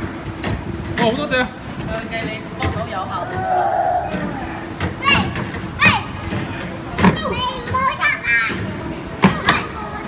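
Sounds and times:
steady background hum: 0:00.0 - 0:10.0
child calling out excitedly: 0:03.3 - 0:06.0.

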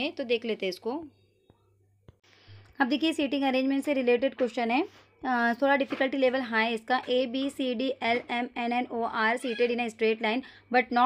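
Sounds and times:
woman talking: 0:00.0 - 0:01.1, 0:02.8 - 0:11.0.

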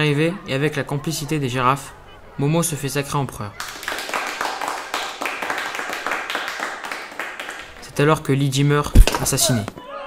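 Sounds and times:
crowd applauding: 0:03.6 - 0:07.9.

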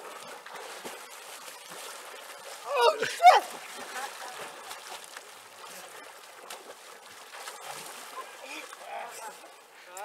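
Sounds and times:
water splashing and sloshing: 0:00.0 - 0:10.0.

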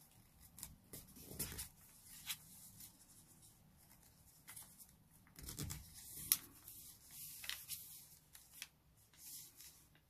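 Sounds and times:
paper rustling as creased: 0:00.0 - 0:10.0.

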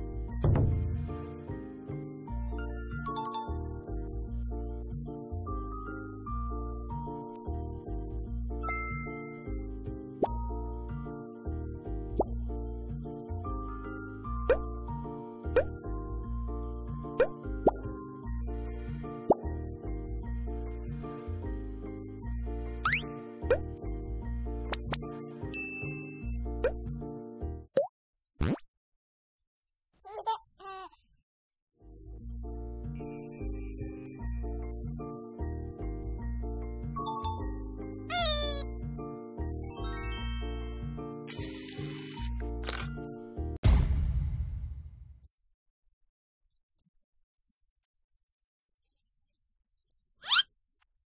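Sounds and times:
background music with bass line: 0:00.0 - 0:08.6
light background music: 0:00.0 - 0:27.7, 0:31.9 - 0:43.6
bright chime tones: 0:08.6 - 0:09.5.

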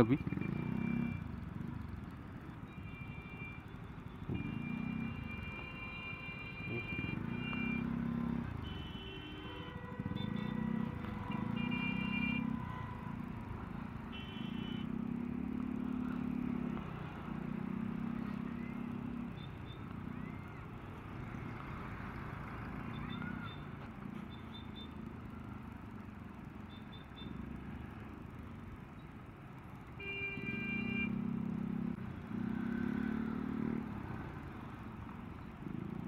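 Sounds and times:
motorcycle engine: 0:00.0 - 0:02.5, 0:04.2 - 0:28.8, 0:29.9 - 0:36.0
slow traffic hum: 0:00.0 - 0:36.0.

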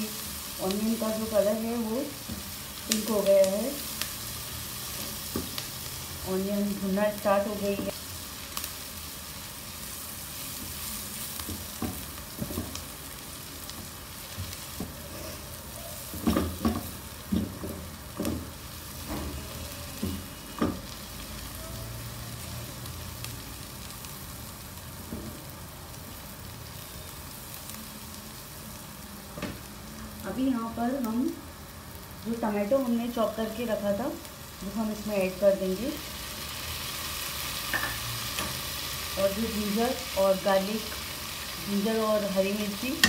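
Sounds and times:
onions sizzling in oil: 0:00.0 - 0:43.0.

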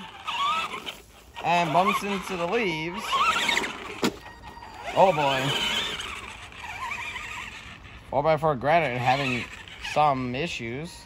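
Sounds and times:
toy car electric motor whining: 0:00.0 - 0:10.8.

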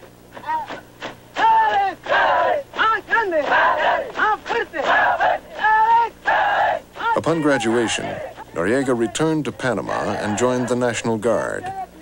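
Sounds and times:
soldiers chanting in unison: 0:01.4 - 0:09.2.

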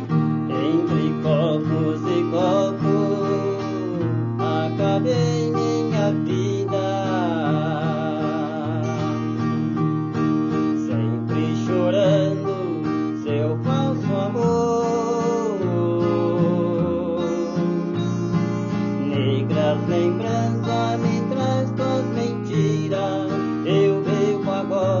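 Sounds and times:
fingerstyle acoustic guitar melody: 0:00.0 - 0:25.0.

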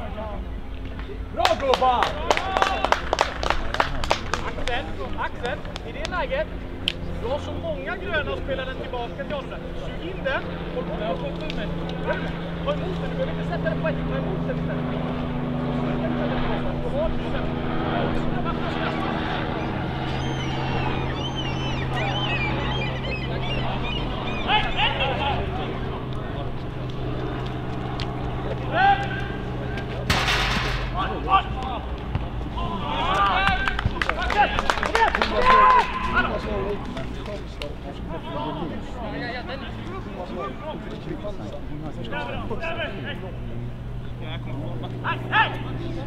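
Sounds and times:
steady low hum: 0:00.0 - 0:34.1
players calling and shouting: 0:00.0 - 0:46.0.

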